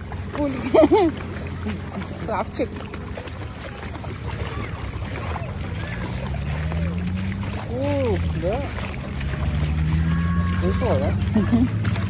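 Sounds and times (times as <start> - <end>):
water sloshing: 0.0 - 12.0.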